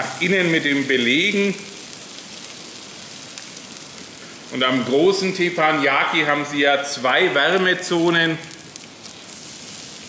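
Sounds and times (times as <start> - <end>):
potato slices sizzling on griddle: 0.0 - 10.0.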